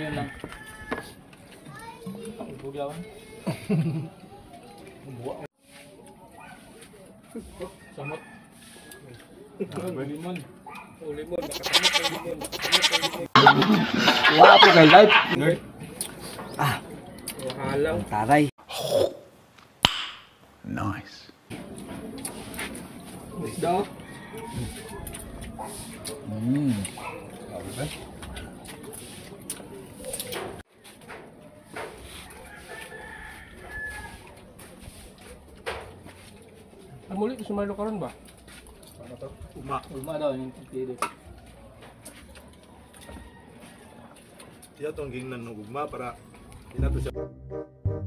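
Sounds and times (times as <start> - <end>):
faint outdoor background noise: 0.0 - 47.2
wavering animal bleat: 11.4 - 13.4
man's voice: 46.8 - 47.3.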